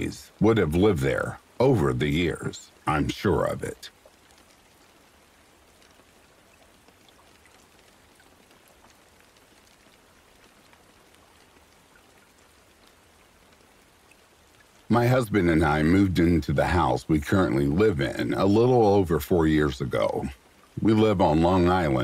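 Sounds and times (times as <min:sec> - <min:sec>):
faint steady rain: 0:00.0 - 0:22.0.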